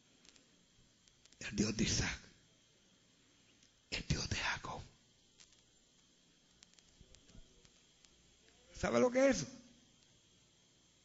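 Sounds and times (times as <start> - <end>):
faint room hiss: 0.0 - 11.0
man speaking: 1.4 - 2.3, 8.6 - 9.7.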